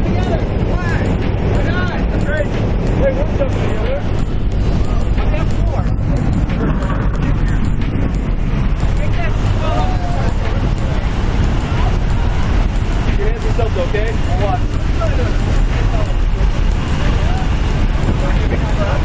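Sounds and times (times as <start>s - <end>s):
faint voices: 0.0s - 19.0s
plane engine drone: 0.0s - 19.0s
wind rushing through door: 0.0s - 19.0s.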